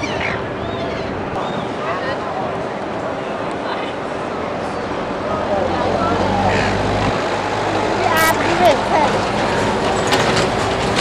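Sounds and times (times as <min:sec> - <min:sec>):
voices of passers-by: 0:00.0 - 0:11.0.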